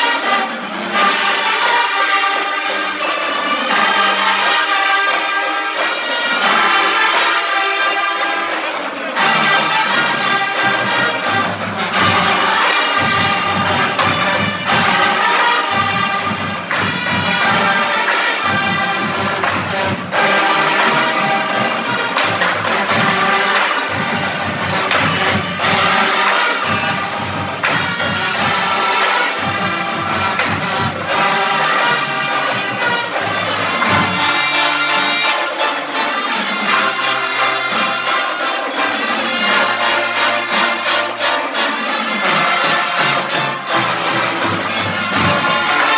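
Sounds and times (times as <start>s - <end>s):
marching band playing: 0.0s - 45.9s
drum hits: 9.7s - 35.3s.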